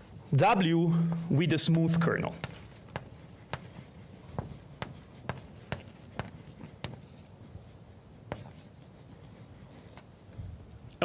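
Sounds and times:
chalk scraping on blackboard: 2.4s - 10.0s
chalk tapping on blackboard: 2.4s - 10.1s.

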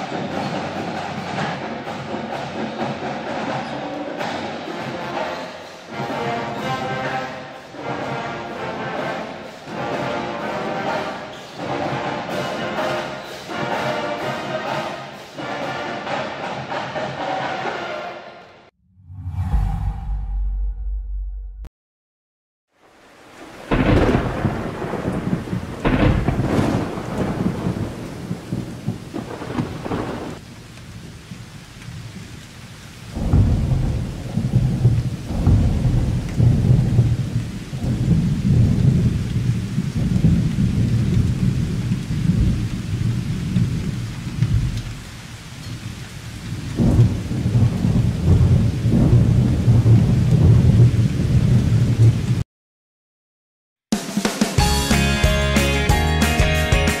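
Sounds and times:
rain: 0.0s - 18.7s, 22.7s - 52.4s
low rolling thunder: 23.3s - 32.4s, 33.1s - 45.1s, 45.9s - 52.4s
sharp thunderclaps: 23.5s - 30.4s, 33.1s - 45.0s, 46.5s - 52.4s.

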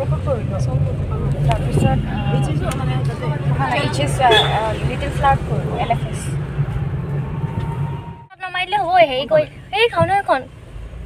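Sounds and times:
engine and road drone in car: 0.0s - 11.0s.

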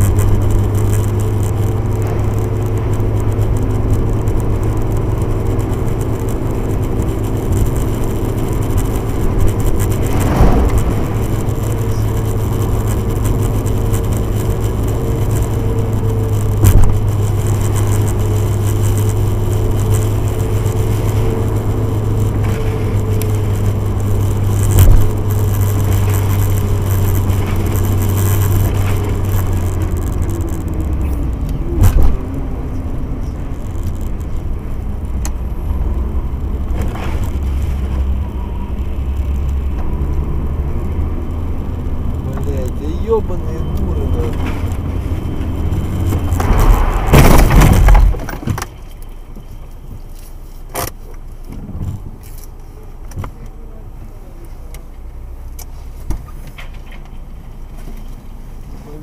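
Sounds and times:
car engine hum: 0.0s - 59.0s.

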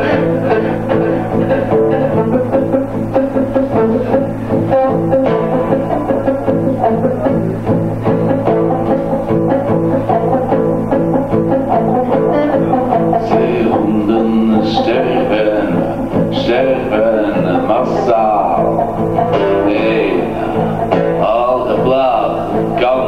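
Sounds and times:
acoustic guitars playing: 0.0s - 23.0s.

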